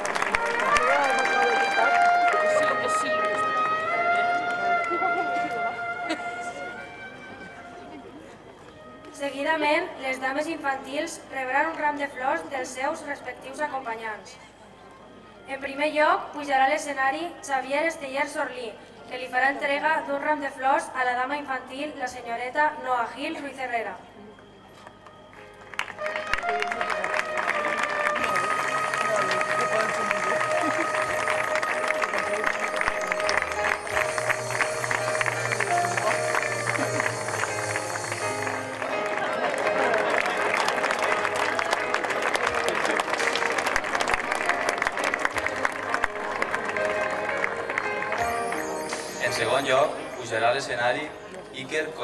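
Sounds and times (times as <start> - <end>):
audience applause: 0.0 - 7.9, 25.6 - 49.6
music with long held notes: 0.0 - 9.2, 25.3 - 51.6.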